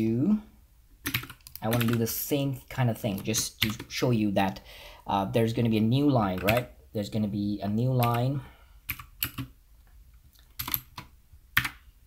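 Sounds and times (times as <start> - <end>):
computer keyboard keystrokes: 1.0 - 2.0, 8.9 - 9.5, 10.4 - 11.8.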